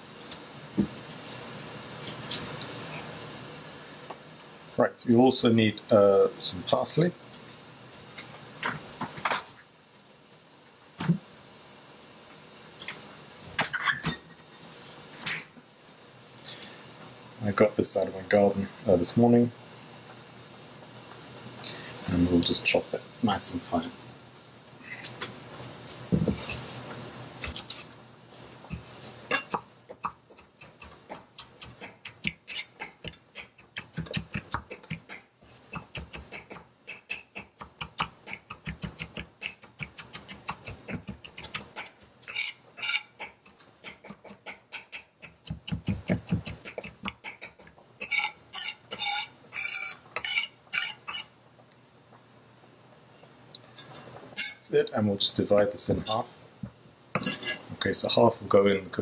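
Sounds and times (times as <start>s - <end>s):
knife chopping on wooden block: 45.5s - 47.1s.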